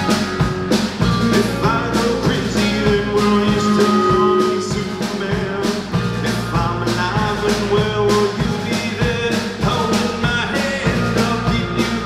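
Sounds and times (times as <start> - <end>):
bass guitar: 0.0 - 12.0
drum kit beat: 0.0 - 12.0
electric guitars: 0.0 - 12.0.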